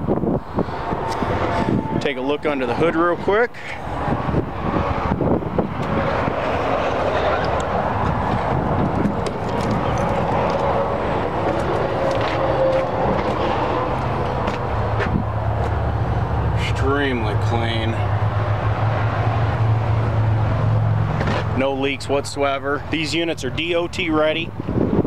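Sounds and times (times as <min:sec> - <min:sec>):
wind on microphone: 0:00.0 - 0:16.6, 0:24.5 - 0:25.0
hood knocks and clicks: 0:07.5 - 0:10.8, 0:11.4 - 0:13.4.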